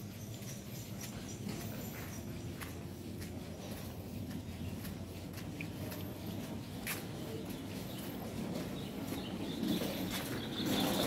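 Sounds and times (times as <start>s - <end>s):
footsteps on paving stones: 0.0s - 11.0s
low background hum: 0.0s - 11.0s.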